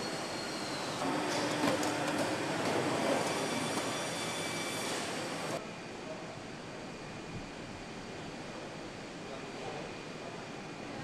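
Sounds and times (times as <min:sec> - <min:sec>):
factory machinery noise: 0:00.0 - 0:11.0.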